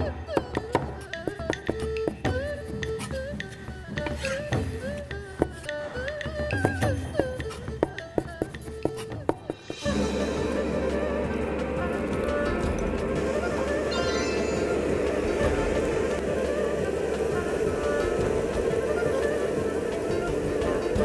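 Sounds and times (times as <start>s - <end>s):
background music: 0.0s - 21.0s.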